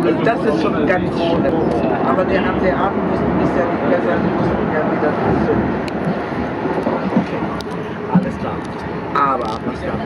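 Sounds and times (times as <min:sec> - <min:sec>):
train wheels and motors rumbling: 0:00.0 - 0:10.0.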